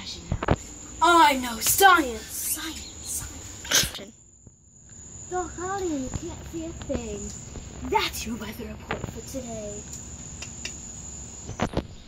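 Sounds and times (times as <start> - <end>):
high-pitched insect trill: 0.0 - 12.0.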